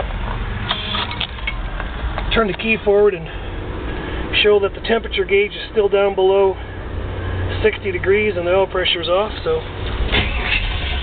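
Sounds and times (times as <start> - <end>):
steady low rumble: 1.3 - 11.0.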